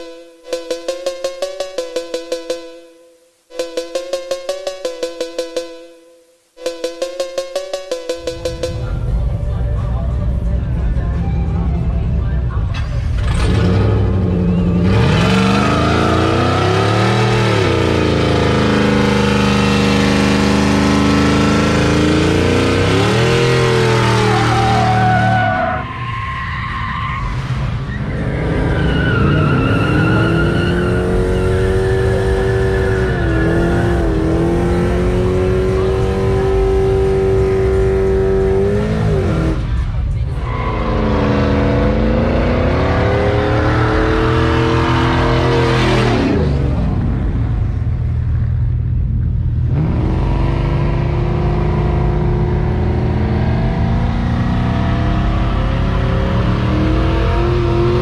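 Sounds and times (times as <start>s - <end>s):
truck engine revving: 10.3s - 25.8s, 27.2s - 48.3s, 49.4s - 58.0s.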